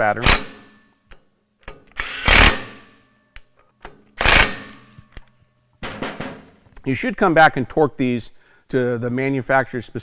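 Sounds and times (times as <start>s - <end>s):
cordless power tool buzzing: 2.0s - 2.8s, 4.2s - 4.8s.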